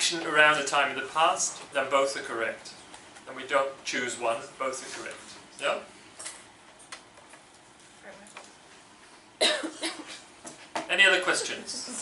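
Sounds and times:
loud cough: 9.4s - 10.3s.

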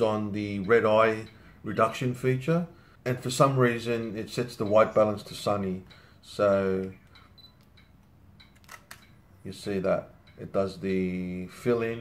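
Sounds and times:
faint camera ticks: 6.8s - 9.2s
camera shutter clicking: 8.5s - 9.1s.

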